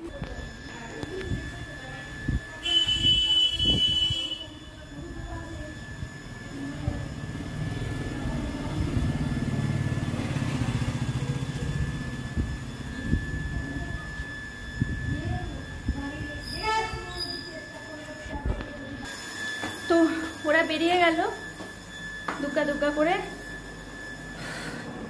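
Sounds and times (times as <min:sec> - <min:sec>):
vehicle horn: 0:02.6 - 0:04.7.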